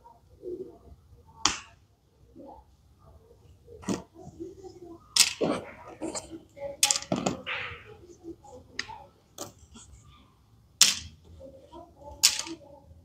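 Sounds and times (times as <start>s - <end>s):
plastic toy pieces clicking: 5.2s - 5.4s, 10.8s - 11.2s, 12.2s - 12.6s.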